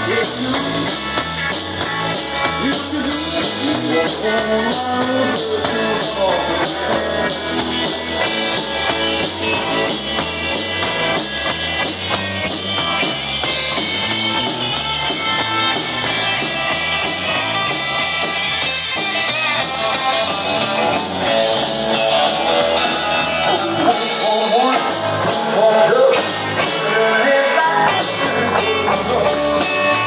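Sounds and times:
drum kit with cymbals: 0.0 - 30.0
electric bass: 0.0 - 30.0
electric guitar: 0.0 - 30.0.

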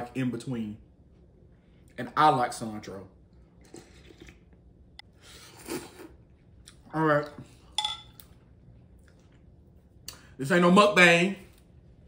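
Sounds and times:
person eating soup: 3.5 - 6.9.

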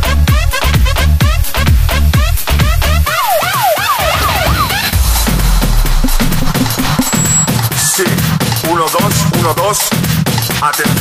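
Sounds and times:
house dance music: 0.0 - 11.0
siren wail synth: 3.0 - 5.0.

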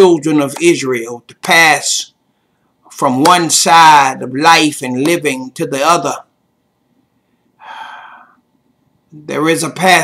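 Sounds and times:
man speaking: 0.0 - 2.2, 2.9 - 6.3, 9.1 - 10.0
man taking quick breath: 7.5 - 8.4.

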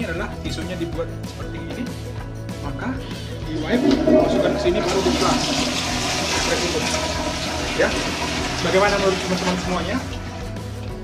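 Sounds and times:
toilet flushing: 3.4 - 10.6.

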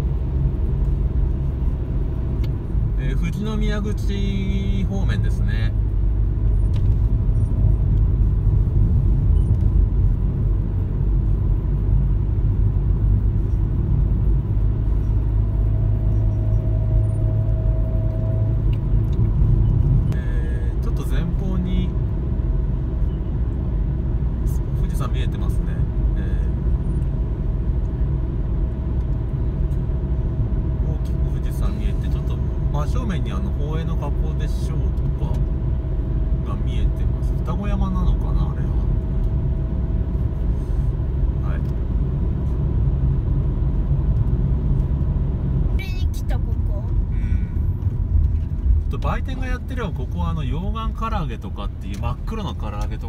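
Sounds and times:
car engine and tyre rumble: 0.0 - 53.0.

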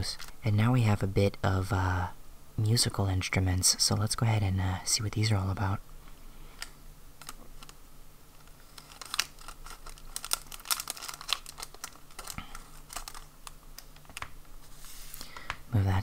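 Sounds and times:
plastic crackles: 0.0 - 0.5, 6.5 - 15.6
scissors snipping plastic packet: 8.7 - 14.3.

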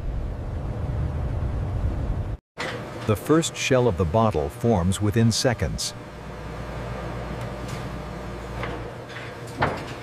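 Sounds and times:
low machine hum: 0.0 - 10.0.

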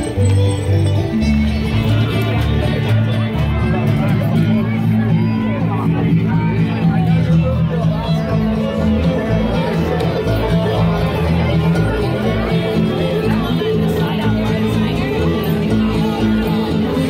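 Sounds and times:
crowd chatter: 0.0 - 17.0
live bluegrass band playing: 0.0 - 17.0.

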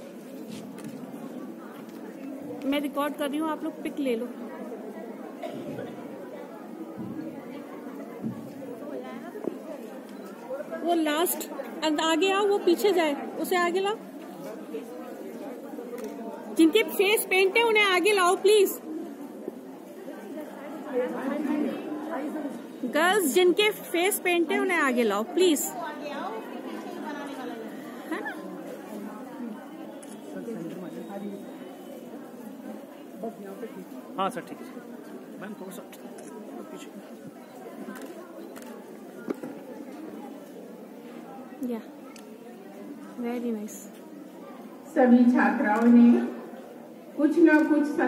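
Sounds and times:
chatter of women's voices: 1.0 - 48.0.

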